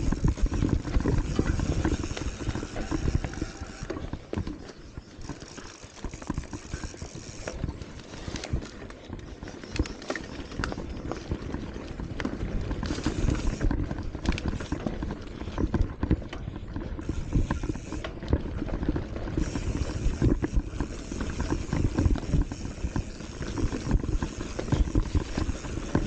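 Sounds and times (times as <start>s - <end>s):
bike frame knocks and clatter: 0.0s - 26.0s
bike tyres rumbling on dirt: 0.0s - 26.0s.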